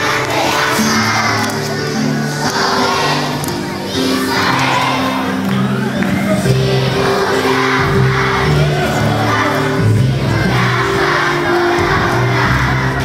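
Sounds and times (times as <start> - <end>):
children singing together: 0.0 - 13.0
instrumental accompaniment: 0.0 - 13.0.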